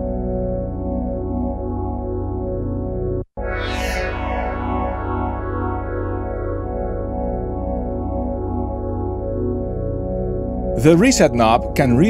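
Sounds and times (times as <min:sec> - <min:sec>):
shimmering synth chord: 0:00.0 - 0:10.8.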